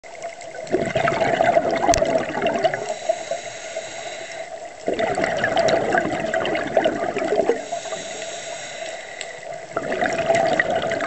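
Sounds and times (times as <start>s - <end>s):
scuba exhaust bubbles underwater: 0.0s - 11.0s.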